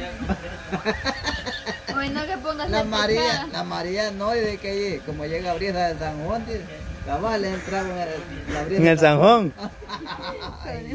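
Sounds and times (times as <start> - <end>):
people talking: 0.0 - 10.9
people chuckling and snickering: 0.1 - 2.2, 9.5 - 10.9.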